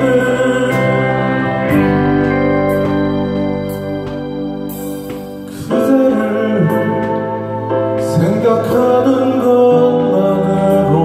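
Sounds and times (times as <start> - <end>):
man singing into a microphone: 0.0 - 2.0, 5.5 - 11.0
electric guitar chords: 0.0 - 11.0.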